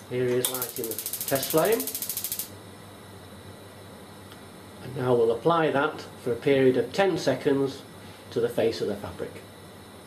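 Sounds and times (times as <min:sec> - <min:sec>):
gas flame hissing: 0:00.0 - 0:10.0
spark igniter clicking rapidly: 0:00.4 - 0:02.6.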